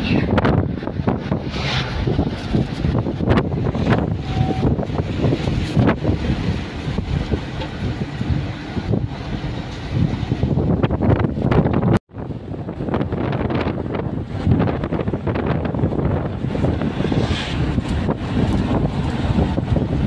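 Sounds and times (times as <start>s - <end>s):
road noise inside moving car: 0.0s - 20.0s
wind buffeting microphone: 0.0s - 20.0s.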